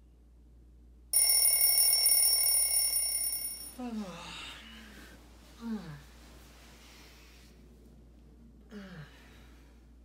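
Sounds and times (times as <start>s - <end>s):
alarm ringing: 1.2s - 3.8s.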